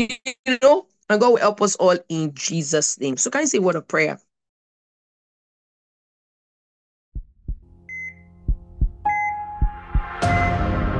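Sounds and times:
synthetic heartbeat thumping: 7.2s - 10.5s
electronic heart-monitor beeps: 7.5s - 10.7s.

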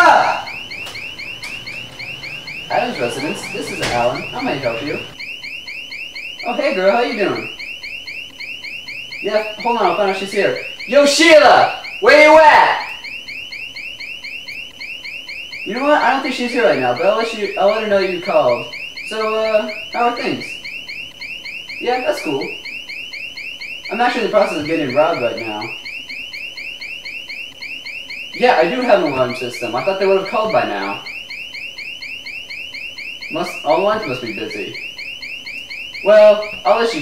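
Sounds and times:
burglar alarm chirping: 0.0s - 37.0s.

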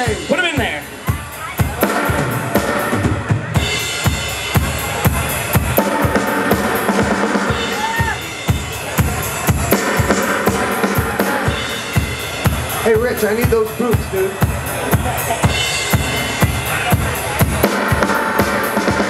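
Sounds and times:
drum kit beat: 0.0s - 19.0s
live rock band playing: 0.0s - 19.0s.

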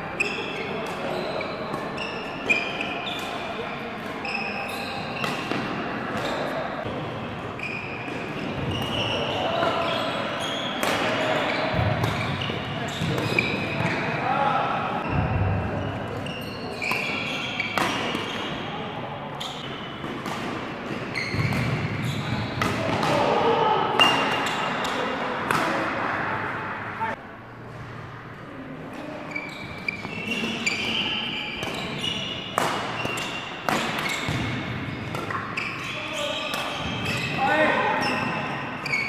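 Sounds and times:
shoe squeaks on court floor: 0.2s - 7.0s, 7.6s - 14.1s, 15.0s - 20.1s, 21.0s - 22.7s, 29.0s - 39.0s
racket striking shuttlecock: 32.6s - 35.5s.

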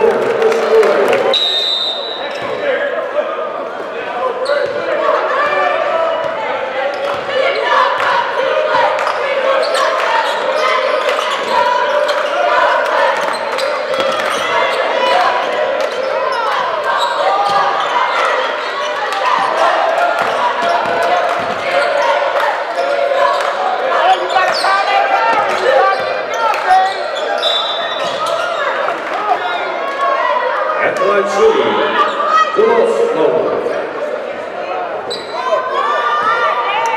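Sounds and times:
crowd chattering: 0.0s - 36.9s.

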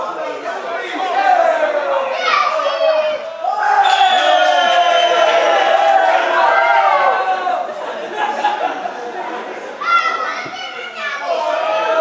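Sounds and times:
voices shouting and chattering: 0.0s - 12.0s.

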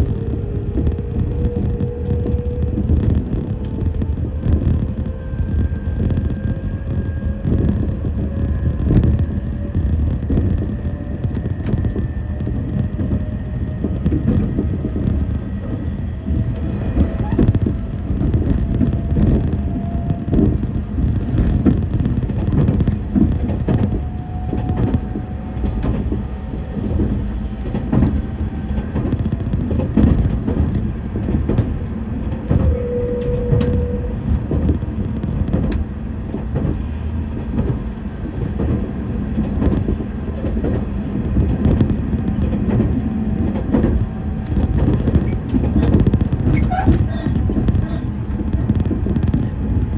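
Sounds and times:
train wheels rumbling on rails: 0.0s - 49.9s.

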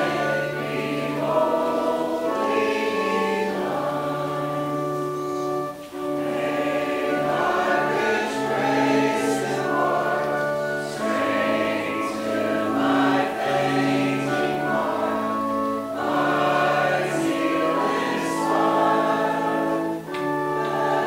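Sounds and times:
congregation singing a hymn: 0.0s - 21.0s
sustained accompanying chords: 0.0s - 21.0s.

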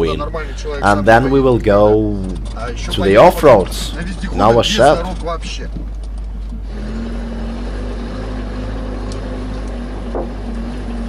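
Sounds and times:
vehicle engine and road noise: 0.0s - 11.0s.

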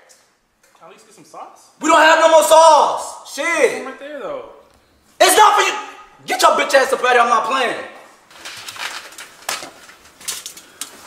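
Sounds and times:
metal tongs scraping foil trays: 8.3s - 10.9s.

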